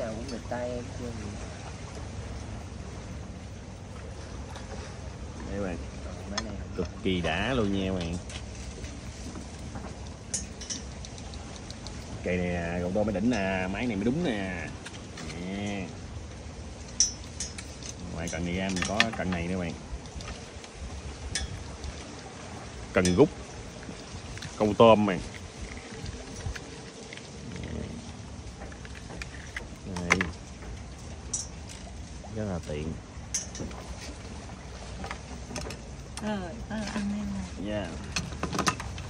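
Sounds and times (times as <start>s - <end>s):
low steady rumble: 0.0s - 39.0s
fishing rod parts clicking: 9.8s - 12.2s.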